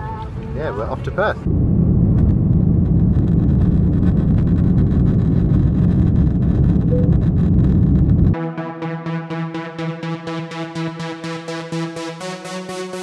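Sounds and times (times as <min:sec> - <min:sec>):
jet engines and runway rumble: 0:00.0 - 0:08.4.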